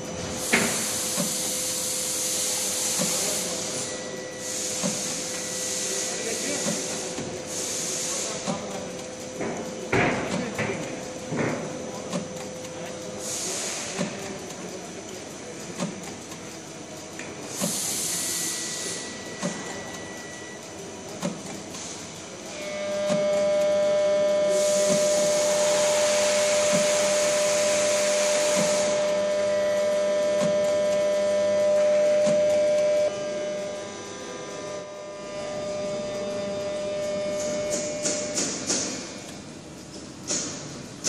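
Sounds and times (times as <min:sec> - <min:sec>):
machine whine with hiss: 0:00.0 - 0:41.0
conveyor clicking: 0:00.5 - 0:32.9.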